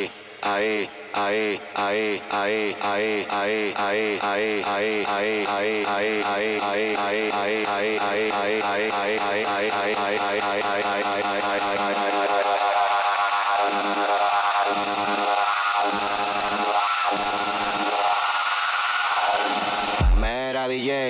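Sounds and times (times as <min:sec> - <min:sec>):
dance music dj set: 0:00.0 - 0:21.0
heavy bass hit with pitch bend: 0:20.0 - 0:20.3.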